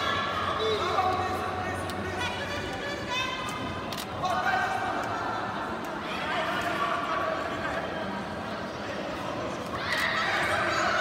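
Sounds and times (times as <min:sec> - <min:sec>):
people shouting in a hall: 0:00.0 - 0:07.5, 0:09.7 - 0:11.0.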